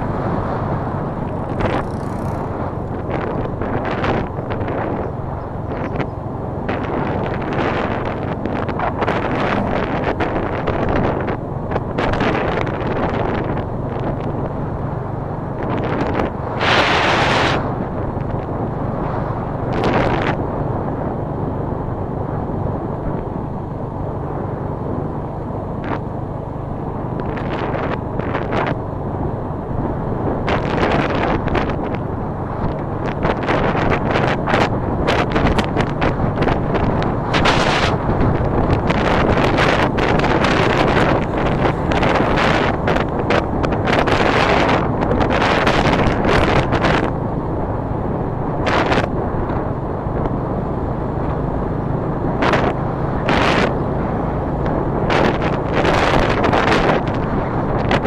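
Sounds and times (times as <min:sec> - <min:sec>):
motorcycle engine cruising: 0:00.0 - 0:58.0
wind buffeting microphone: 0:00.0 - 0:58.0.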